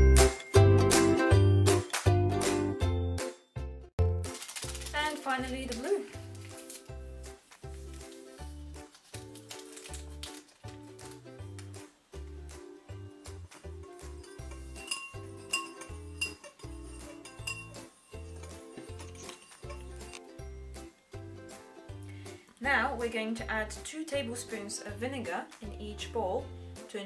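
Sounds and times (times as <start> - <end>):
upbeat ukulele music: 0.0 - 26.3
metal spoon clinking ceramic bowl: 13.5 - 20.2.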